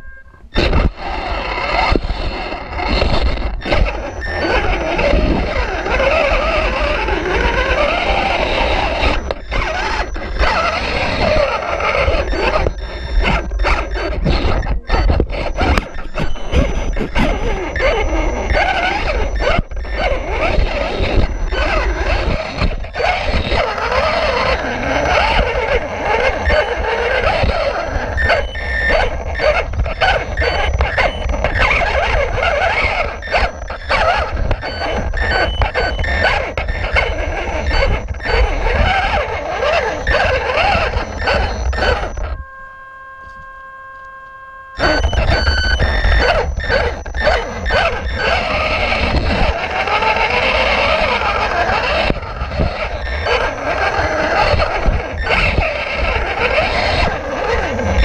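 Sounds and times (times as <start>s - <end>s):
electric motor and gears whining: 0.0s - 58.0s.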